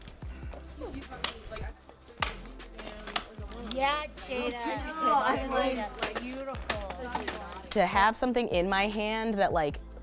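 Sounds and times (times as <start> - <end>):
music with low beat: 0.0 - 10.0.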